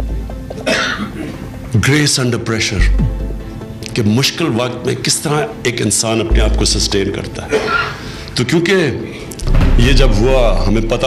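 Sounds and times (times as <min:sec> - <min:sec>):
faint background music: 0:00.0 - 0:11.0
cough-like burst: 0:00.6 - 0:01.4.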